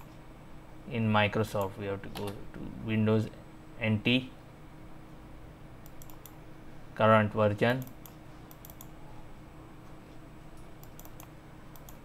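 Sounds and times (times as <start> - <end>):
faint steady hum: 0.0 - 12.0
computer mouse clicks: 5.8 - 6.4, 7.7 - 9.0, 10.6 - 12.0.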